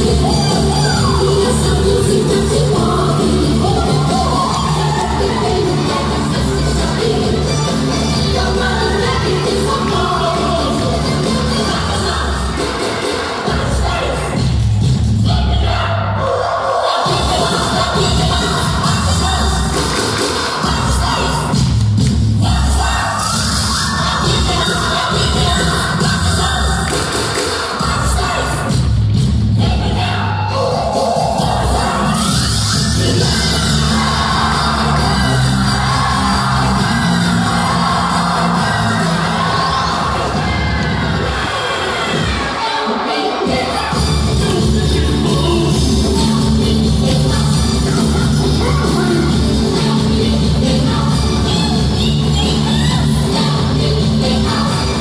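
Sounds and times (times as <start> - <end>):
song over sound system: 0.0 - 16.2, 16.8 - 55.0
crowd noise: 0.0 - 55.0
audience cheering: 30.5 - 43.8.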